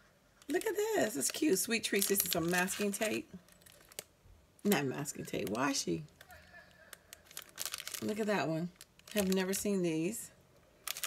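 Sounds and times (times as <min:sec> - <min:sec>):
plastic packaging crinkling: 0:00.4 - 0:04.1, 0:04.7 - 0:09.8, 0:10.8 - 0:11.0.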